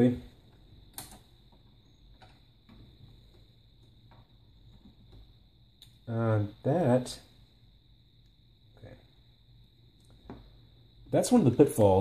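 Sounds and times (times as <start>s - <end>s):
faint high whine: 0.0s - 12.0s.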